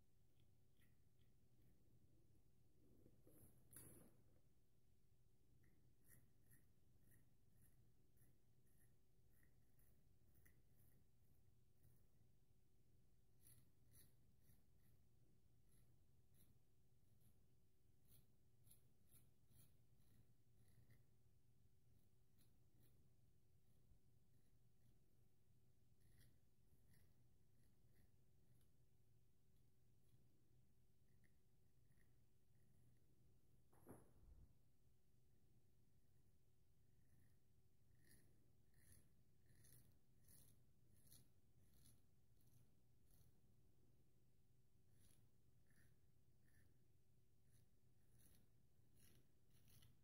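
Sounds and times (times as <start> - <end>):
straight razor scratching stubble: 37.9 - 43.6, 47.4 - 50.0.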